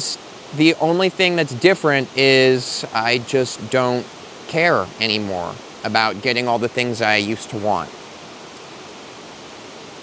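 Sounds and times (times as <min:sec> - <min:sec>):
creek flowing over rocks: 0:00.0 - 0:10.0.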